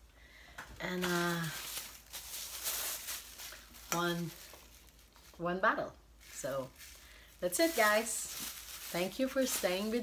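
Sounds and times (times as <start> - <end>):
plastic bag rustling and crinkling: 0.8 - 5.6, 6.2 - 10.0.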